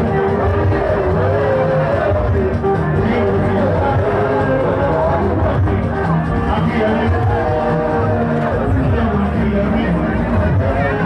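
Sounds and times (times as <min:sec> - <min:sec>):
hubbub of people talking: 0:00.0 - 0:11.0
music playing: 0:00.0 - 0:11.0.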